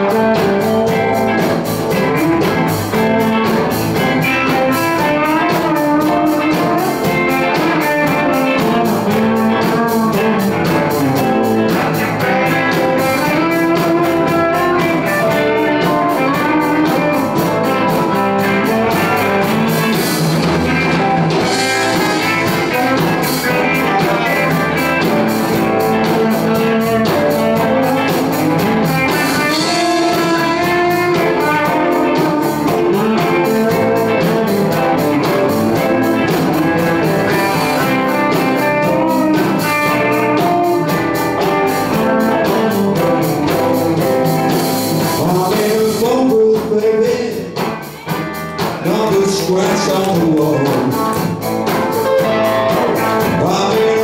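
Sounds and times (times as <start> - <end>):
drum kit beat: 0.0 - 54.0
electric guitars: 0.0 - 54.0.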